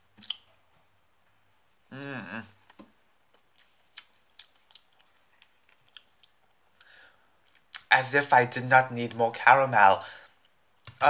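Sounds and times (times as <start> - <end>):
chewing clicks: 3.6 - 7.9.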